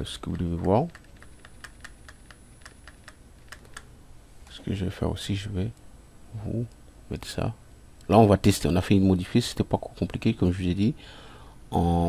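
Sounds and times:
computer keyboard keystrokes: 0.6s - 3.9s.

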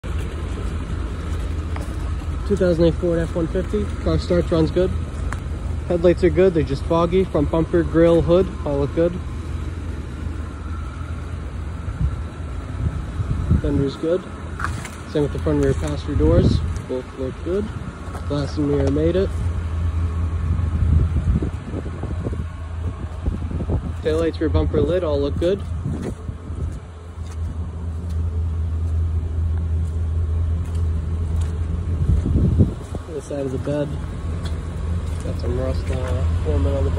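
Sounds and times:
pickup truck engine idling: 0.0s - 36.9s
wind buffeting microphone: 10.3s - 14.0s, 15.8s - 16.9s, 19.3s - 27.8s, 31.3s - 35.8s.

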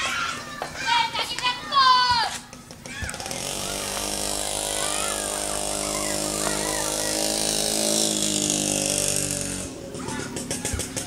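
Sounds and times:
small motorcycle engine running: 2.8s - 11.0s.

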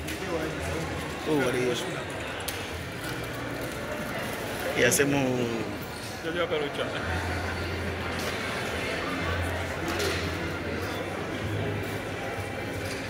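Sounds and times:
people talking indistinctly: 0.0s - 12.6s.

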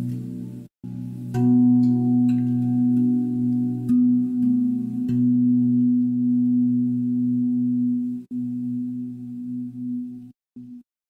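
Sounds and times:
low meditation drone: 0.0s - 10.9s.

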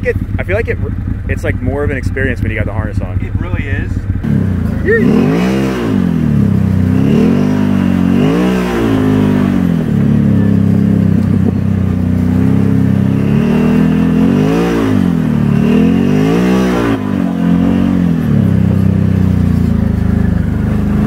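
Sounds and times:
engine revving: 0.0s - 21.0s.

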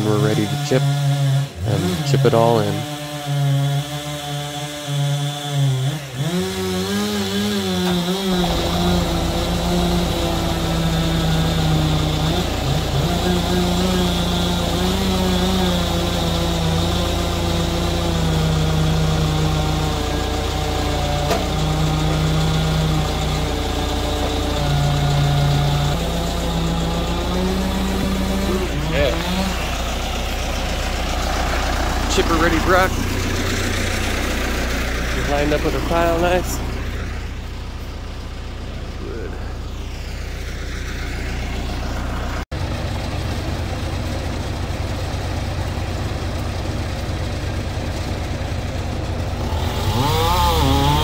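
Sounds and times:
heavy equipment engine rumble: 7.8s - 51.0s
droning tone shifting pitch: 8.4s - 14.2s.

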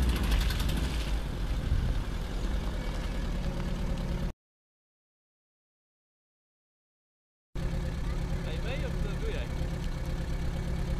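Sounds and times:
van engine idling: 0.0s - 4.3s, 7.6s - 10.9s.

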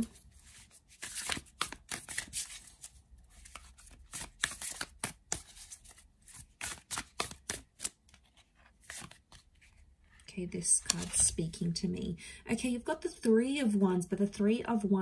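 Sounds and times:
cards being shuffled: 0.0s - 9.8s, 10.8s - 11.3s.

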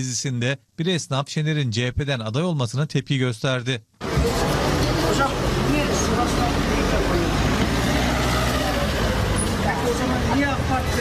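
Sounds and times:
traffic rushing: 4.0s - 11.0s.

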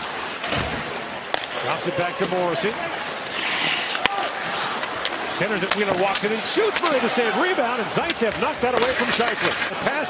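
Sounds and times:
skate blades hissing on ice: 3.3s - 4.1s
stick cracking on puck: 8.0s - 9.6s.

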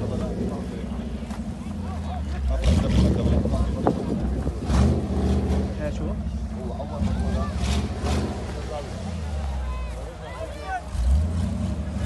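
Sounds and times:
crowd chatter and shouts: 0.0s - 12.0s
off-road vehicle engine droning: 0.0s - 12.0s.

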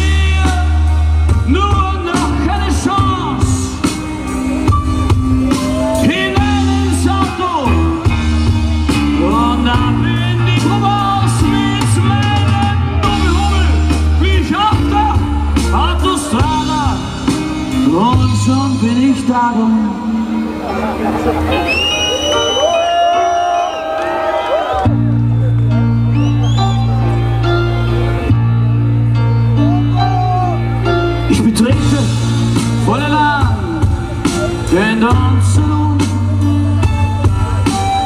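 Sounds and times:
live rock band with singer: 0.0s - 38.0s
high steady whistle-like tone: 21.7s - 22.9s.

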